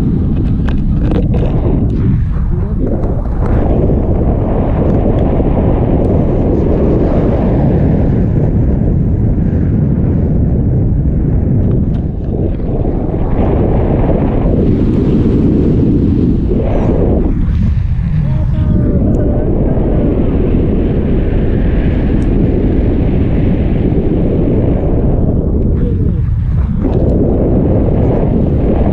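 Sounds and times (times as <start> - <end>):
wind roaring over microphone: 0.0 - 28.9.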